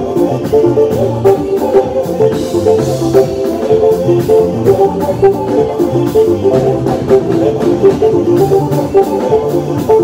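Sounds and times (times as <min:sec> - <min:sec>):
bass line: 0:00.0 - 0:10.0
electronic keyboard plucked notes: 0:00.0 - 0:10.0
steady drums: 0:00.0 - 0:10.0.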